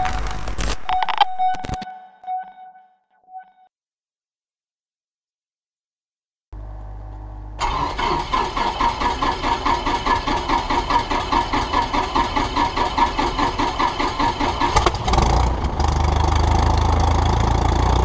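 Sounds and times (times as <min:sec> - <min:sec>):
aircraft engine idling: 0:07.6 - 0:14.8
starter cranking engine: 0:07.6 - 0:16.8.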